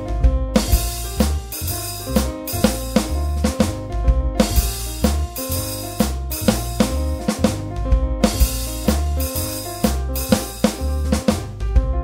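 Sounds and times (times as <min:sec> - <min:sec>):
bass line: 0:00.0 - 0:12.0
jazz drum kit beat: 0:00.0 - 0:12.0
held notes: 0:00.6 - 0:11.3.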